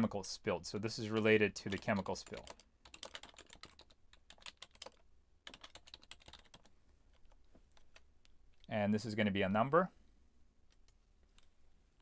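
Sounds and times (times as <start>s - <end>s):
computer keyboard typing: 1.1s - 8.7s, 10.7s - 12.0s.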